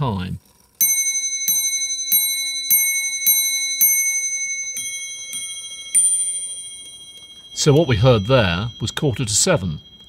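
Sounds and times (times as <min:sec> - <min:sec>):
clock bell strikes: 0:00.8 - 0:10.0.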